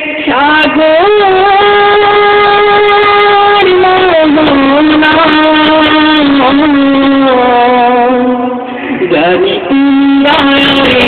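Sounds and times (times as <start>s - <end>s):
singer holding a long note: 0.0s - 11.0s.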